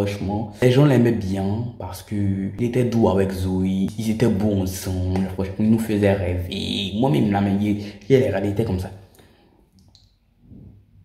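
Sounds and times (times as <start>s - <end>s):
faint mouth clicks: 9.1s - 10.2s.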